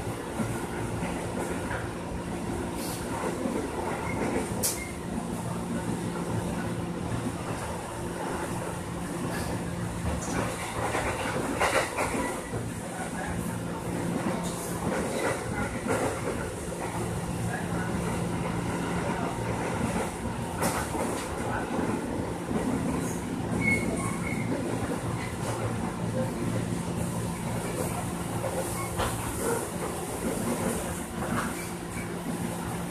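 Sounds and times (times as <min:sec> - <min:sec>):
train wheels rumbling on rail: 0:00.0 - 0:32.9.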